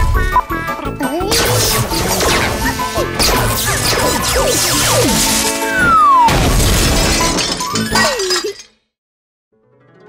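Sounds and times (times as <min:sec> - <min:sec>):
music: 0:00.0 - 0:08.1, 0:09.5 - 0:10.0
cartoon crash with shattering: 0:01.3 - 0:08.7.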